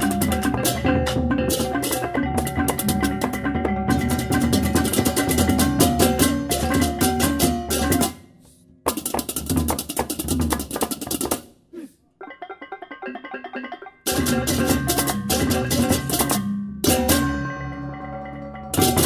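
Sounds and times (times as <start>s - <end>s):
gamelan ensemble playing: 0.0s - 8.4s, 12.2s - 19.0s.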